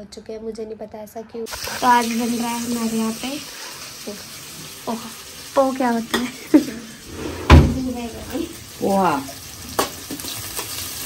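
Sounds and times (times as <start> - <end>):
onions sizzling in oil: 1.5 - 11.0.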